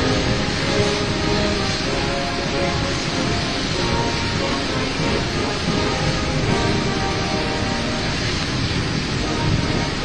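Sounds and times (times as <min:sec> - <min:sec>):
loud steady rushing noise: 0:00.0 - 0:10.0
military band playing: 0:00.0 - 0:10.0.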